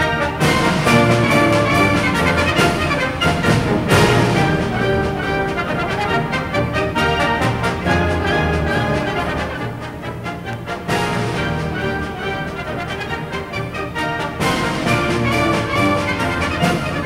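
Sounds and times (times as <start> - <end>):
trumpets and trombones playing chords: 0.0 - 17.0.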